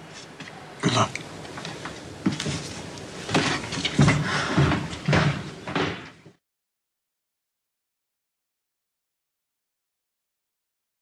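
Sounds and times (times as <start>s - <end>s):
door shutting with heavy thuds: 3.3s - 6.3s.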